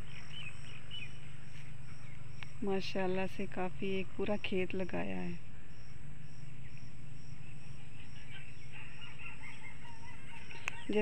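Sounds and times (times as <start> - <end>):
birds calling: 0.0 - 11.0
insect chirping: 0.0 - 11.0
low steady hum: 0.0 - 11.0.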